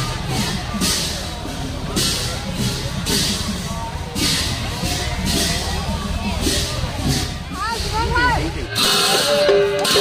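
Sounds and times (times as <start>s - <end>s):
music with long held notes: 0.0s - 10.0s
vehicle engines rumbling: 0.0s - 10.0s
voices: 0.0s - 10.0s.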